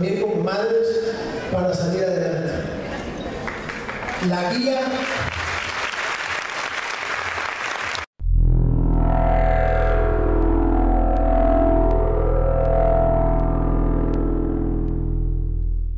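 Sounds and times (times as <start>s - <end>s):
audience applause: 3.4s - 8.1s.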